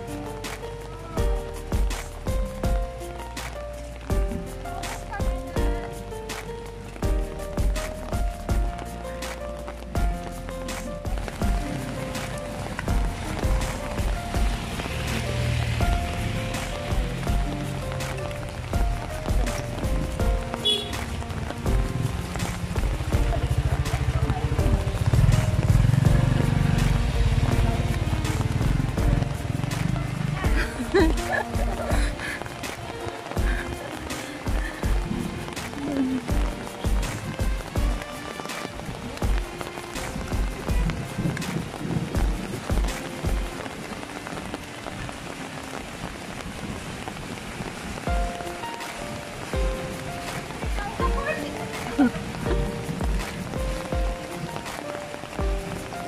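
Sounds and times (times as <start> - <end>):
background music: 0.0 - 56.0
rain on a paved street: 0.0 - 56.0
low thumps: 12.7 - 32.7
motorcycle engine running: 18.8 - 30.8.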